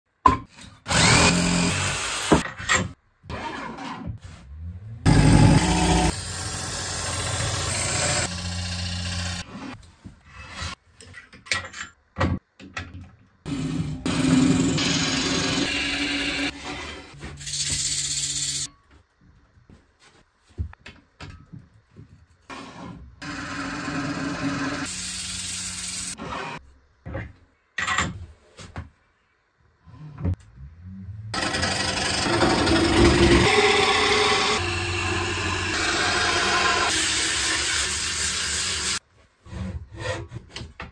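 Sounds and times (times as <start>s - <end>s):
wood planing machine running: 31.4s - 37.3s
lathe gouge cutting wood: 31.4s - 39.0s.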